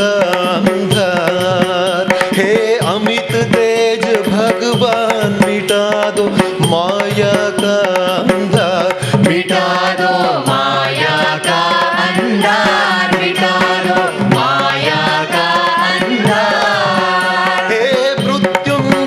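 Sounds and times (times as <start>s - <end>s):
drum strokes: 0.0s - 19.0s
man singing devotional song: 0.0s - 19.0s
tabla: 0.0s - 19.0s.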